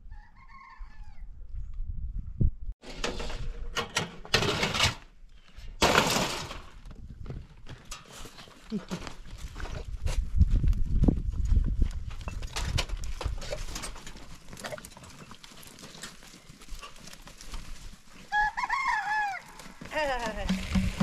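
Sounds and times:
goats clattering over stony ground: 6.0 - 10.0, 11.3 - 18.5, 19.2 - 21.0.

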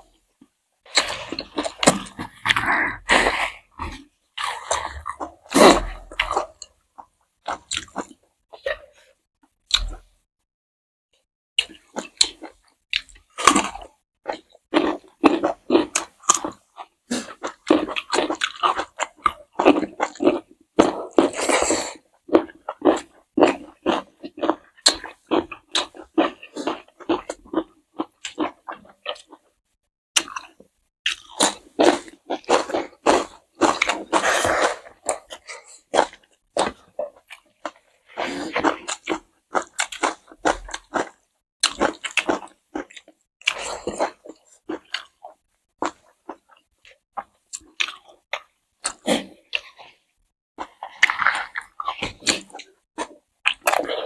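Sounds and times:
food crunching: 0.9 - 9.0, 11.6 - 29.6, 30.2 - 50.0, 50.6 - 54.0
wet chewing: 0.9 - 9.0, 11.6 - 29.5, 30.2 - 50.0, 50.6 - 54.0.

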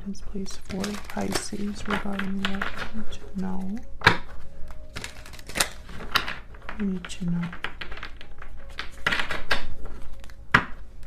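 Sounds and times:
cards shuffling clicks: 0.6 - 11.0.

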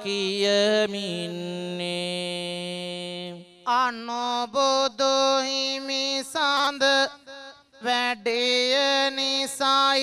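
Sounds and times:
person chanting through a microphone: 0.0 - 10.0.

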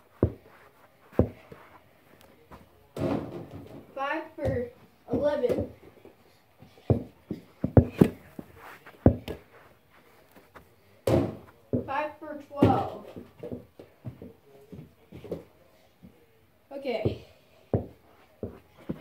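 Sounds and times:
ball knocking hoop and floor: 3.0 - 5.8, 11.0 - 12.0, 12.6 - 14.3.

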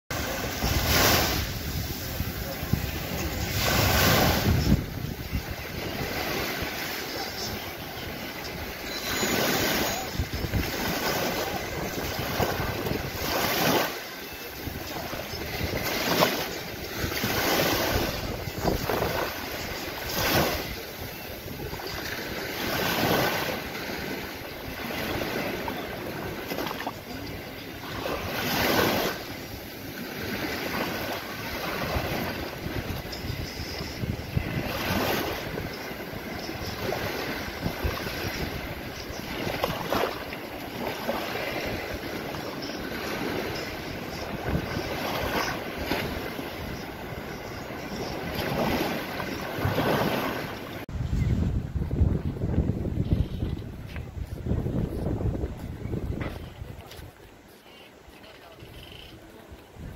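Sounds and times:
small waves breaking on sand: 0.1 - 4.8, 9.1 - 14.2, 14.8 - 32.9, 47.8 - 50.9.

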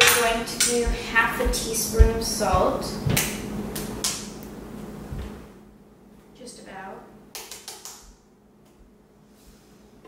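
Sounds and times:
steady low hum: 0.0 - 7.4.

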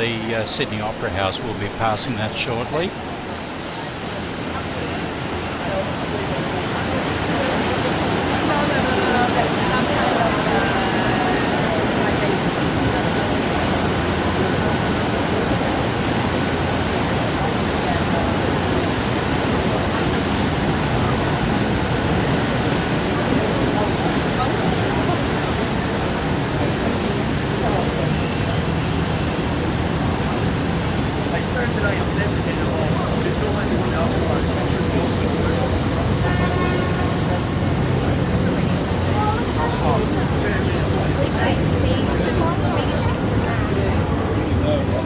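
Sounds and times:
churned water rushing: 0.0 - 45.0
indistinct voices: 0.0 - 45.0
wind: 0.0 - 45.0.

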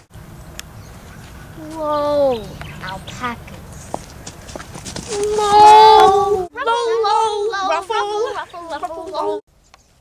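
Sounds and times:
person crying out: 5.2 - 6.4.

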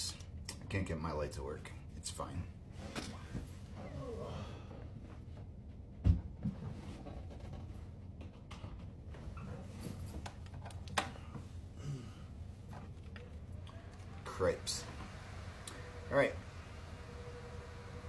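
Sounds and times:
steady low hum: 0.0 - 18.0.

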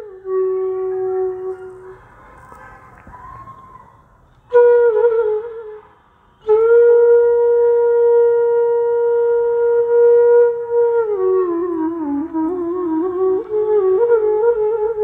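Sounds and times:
bamboo flute playing: 0.0 - 2.1, 3.1 - 15.0.

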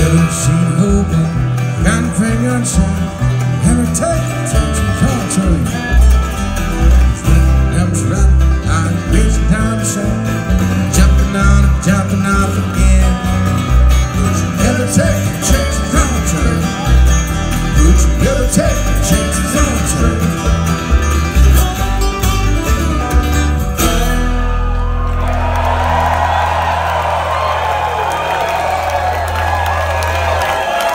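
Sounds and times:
bluegrass band playing live: 0.0 - 30.9
crowd cheering: 24.0 - 30.9.

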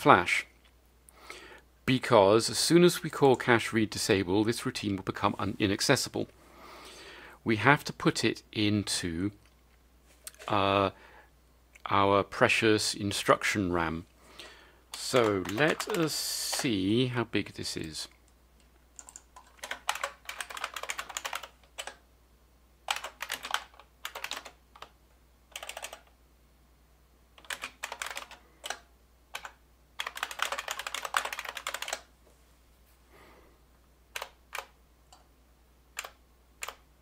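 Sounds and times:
typing on computer keyboard: 15.0 - 16.6, 19.0 - 22.0, 22.9 - 26.2, 27.4 - 32.1, 34.1 - 34.8, 36.0 - 36.8.

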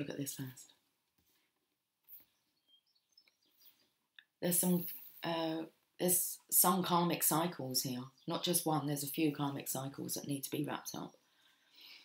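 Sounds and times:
faint bird chirps: 2.1 - 4.0.

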